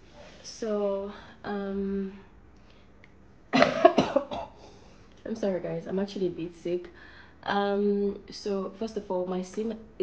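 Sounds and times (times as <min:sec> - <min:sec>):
woman coughing: 0:03.5 - 0:04.6.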